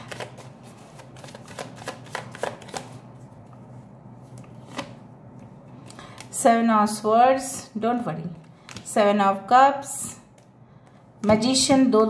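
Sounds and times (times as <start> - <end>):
cards being shuffled: 0.0 - 3.3, 4.2 - 5.0.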